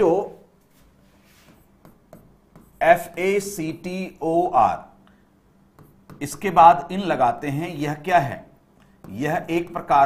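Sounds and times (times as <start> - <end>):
man speaking: 0.0 - 0.5, 2.8 - 5.0, 6.2 - 10.0
pen writing on a board: 1.3 - 3.2, 5.7 - 6.4.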